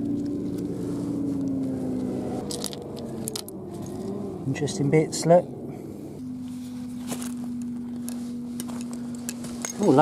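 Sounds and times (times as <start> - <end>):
steady low hum: 0.0 - 10.0
stones and metal clicking: 2.4 - 4.1.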